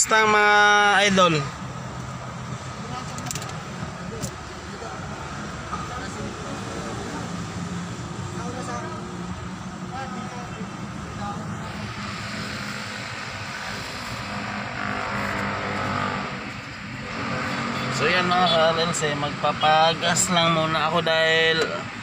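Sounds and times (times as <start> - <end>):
faint voices outside: 0.0 - 22.0
car engine running: 7.8 - 21.8.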